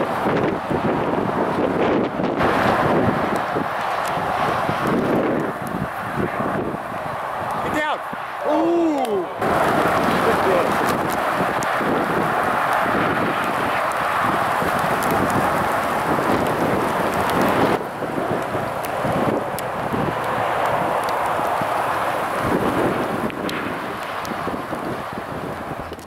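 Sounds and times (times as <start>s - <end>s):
wind blowing over microphone: 0.0s - 26.0s.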